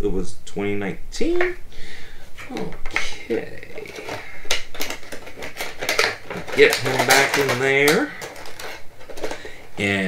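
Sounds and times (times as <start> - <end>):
plastic packaging clicks and crinkles: 2.6 - 9.8.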